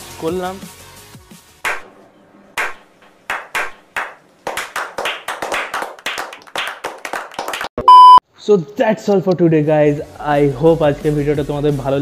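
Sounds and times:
people clapping hands: 0:01.6 - 0:01.9, 0:02.6 - 0:07.9.

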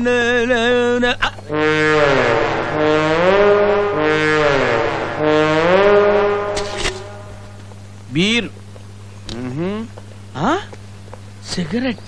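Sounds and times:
low brass horn sliding notes: 0:01.5 - 0:07.8.

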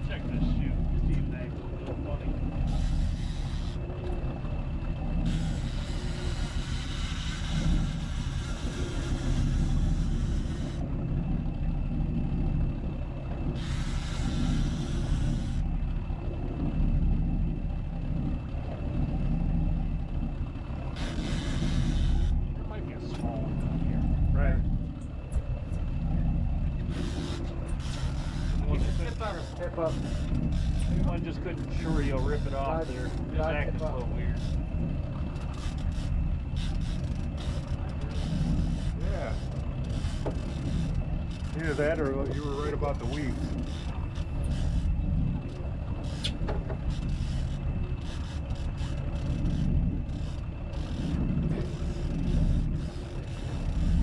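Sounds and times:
boat engine rumbling: 0:00.0 - 0:54.0.

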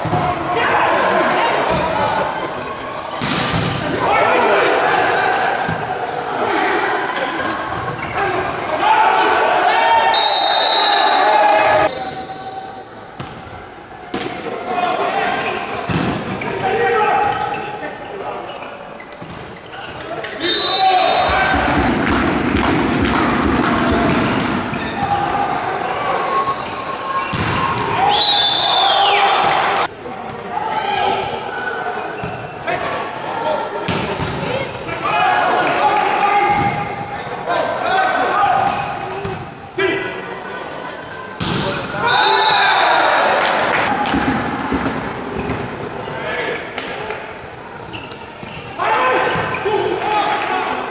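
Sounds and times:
voices shouting: 0:03.8 - 0:12.9, 0:20.1 - 0:22.1, 0:41.8 - 0:44.2
volleyball hit: 0:41.4 - 0:41.8.

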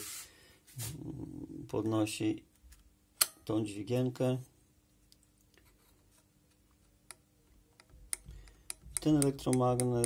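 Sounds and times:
metal levers clicking and knocking: 0:07.8 - 0:10.0.

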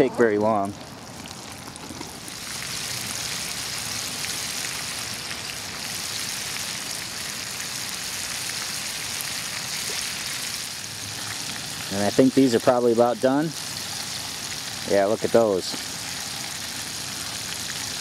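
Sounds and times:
fish deep-frying in oil: 0:00.1 - 0:18.0.

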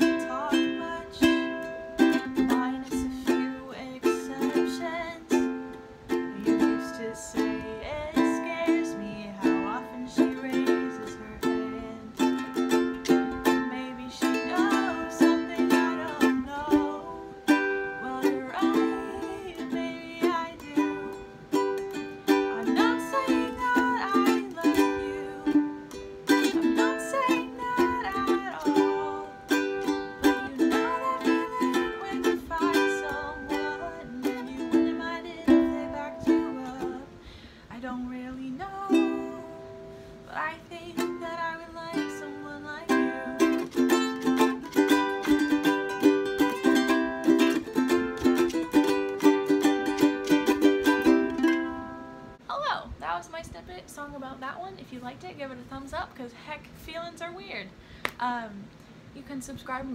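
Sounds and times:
ukulele strumming: 0:00.0 - 0:52.4
woman singing: 0:00.0 - 0:59.9.

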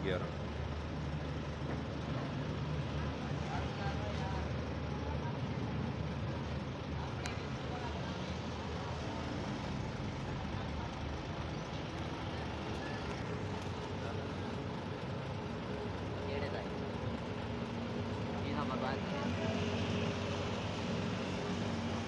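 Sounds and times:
diesel truck engine idling: 0:00.0 - 0:22.0.

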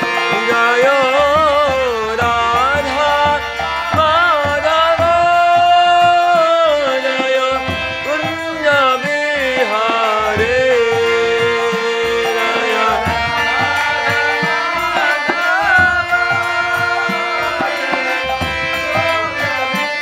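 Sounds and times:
harmonium chords: 0:00.0 - 0:20.0
man singing ornamented melody: 0:00.0 - 0:20.0.

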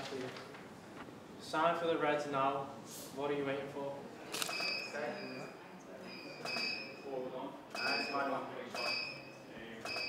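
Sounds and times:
camera shutter firing: 0:04.3 - 0:04.8.

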